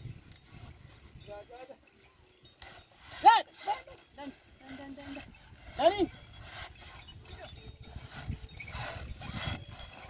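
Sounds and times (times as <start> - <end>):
cart wheels and hooves rumbling: 0.0 - 10.0.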